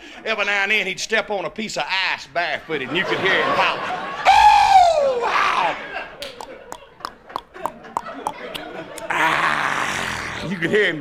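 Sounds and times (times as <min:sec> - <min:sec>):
man making mouth pops: 0:06.2 - 0:09.4.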